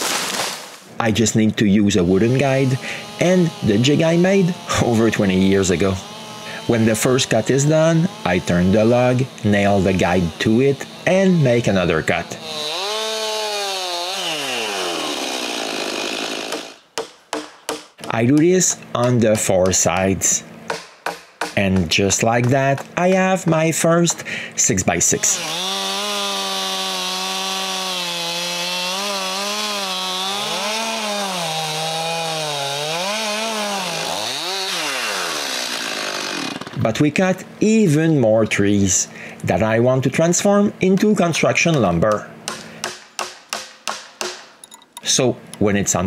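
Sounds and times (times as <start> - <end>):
chainsaw cutting log: 0.0 - 0.8, 1.9 - 20.1, 25.0 - 37.0.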